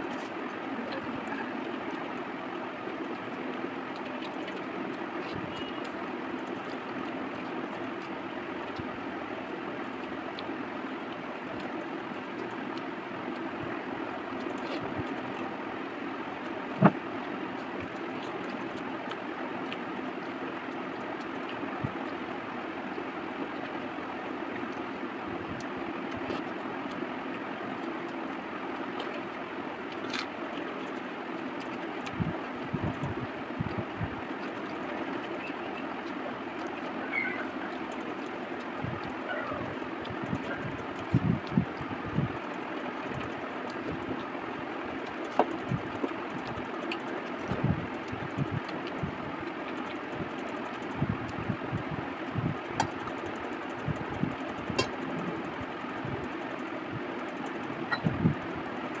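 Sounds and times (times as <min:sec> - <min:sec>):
chewing and mouth sounds: 0:00.0 - 0:59.0.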